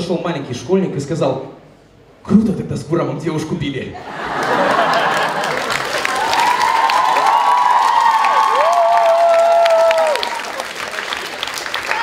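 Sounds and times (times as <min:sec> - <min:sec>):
audience applauding: 0:04.3 - 0:12.0.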